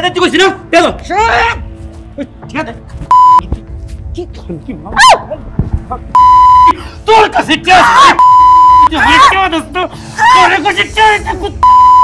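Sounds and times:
people shouting dialogue: 0:00.0 - 0:01.8, 0:04.9 - 0:05.4, 0:07.0 - 0:11.8
censor bleep tone: 0:03.1 - 0:03.4, 0:06.2 - 0:06.7, 0:08.2 - 0:08.9, 0:11.6 - 0:12.0.

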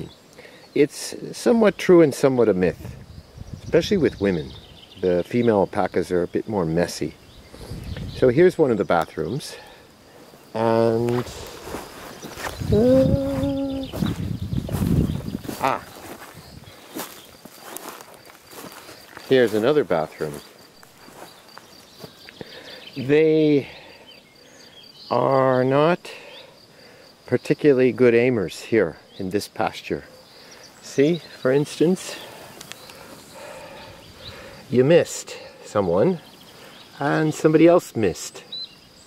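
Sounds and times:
insect chirring: 0:00.0 - 0:39.0
footsteps through grass: 0:10.4 - 0:22.4.

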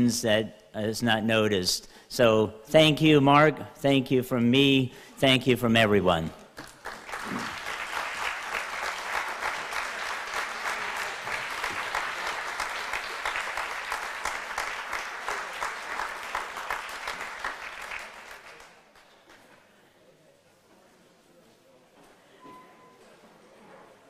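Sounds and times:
audience applauding: 0:06.6 - 0:19.4.

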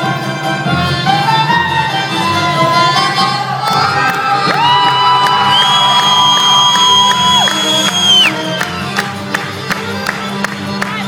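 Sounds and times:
folk dance band playing: 0:00.0 - 0:11.0
crowd cheering: 0:03.1 - 0:11.0.

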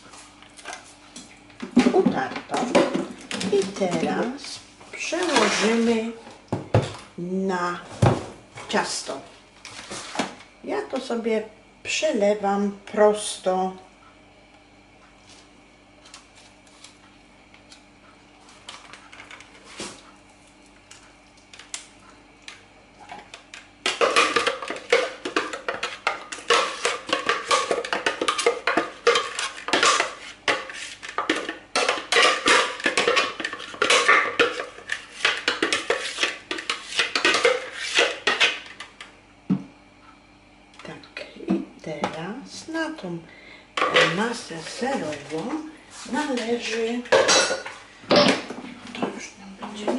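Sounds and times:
utensil scraping plastic bowl: 0:05.0 - 0:06.1, 0:23.9 - 0:38.8.

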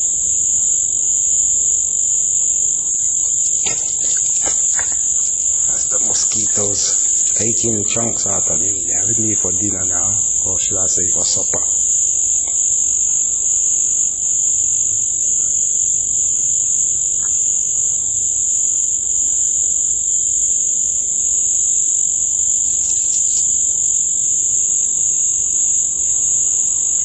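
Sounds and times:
high-pitched insect chorus: 0:00.0 - 0:27.0
lower-pitched insect song: 0:00.0 - 0:27.0.

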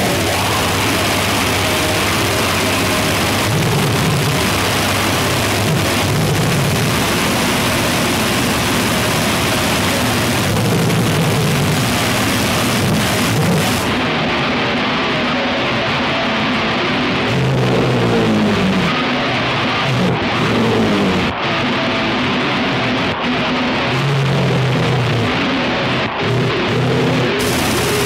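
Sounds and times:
churning low rumble: 0:00.0 - 0:14.0
harsh distorted noise music: 0:00.0 - 0:28.0.

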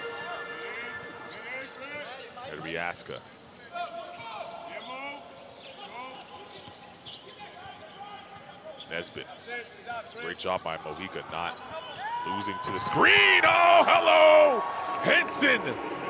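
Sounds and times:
sneakers squeaking: 0:00.7 - 0:12.2
players shouting: 0:11.9 - 0:15.9.

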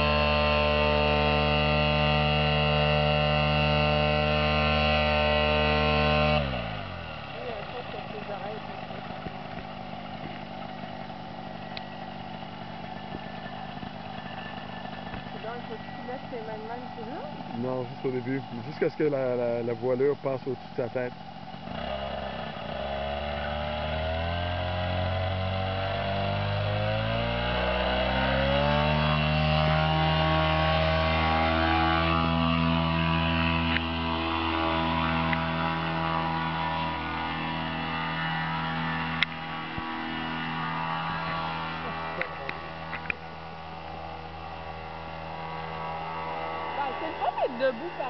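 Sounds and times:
paramotor engine and propeller: 0:00.0 - 0:48.0.

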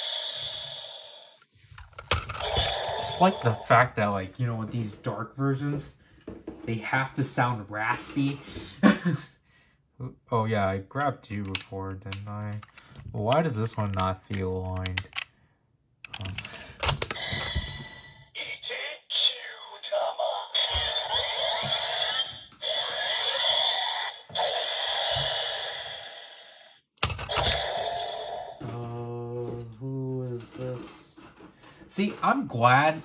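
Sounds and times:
toy blaster electronic sound effects: 0:00.0 - 0:01.4, 0:02.4 - 0:03.8, 0:17.2 - 0:26.7, 0:27.3 - 0:28.6
raspy electronic voice call: 0:02.4 - 0:03.9, 0:18.4 - 0:24.5.

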